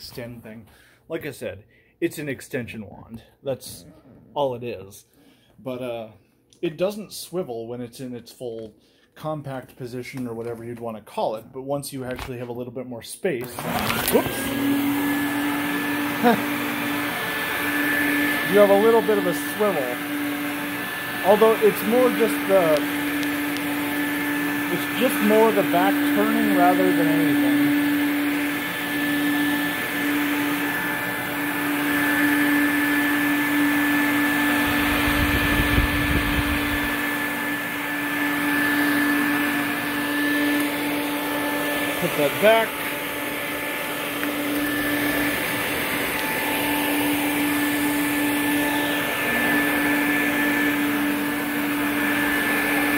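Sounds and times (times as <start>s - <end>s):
vacuum cleaner running on carpet: 13.4s - 52.9s.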